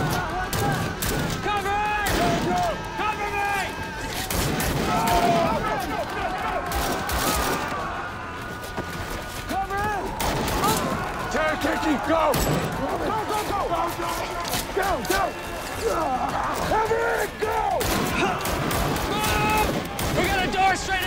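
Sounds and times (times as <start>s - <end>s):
men shouting: 0.0s - 21.0s
rifle gunfire volleys: 17.8s - 20.5s.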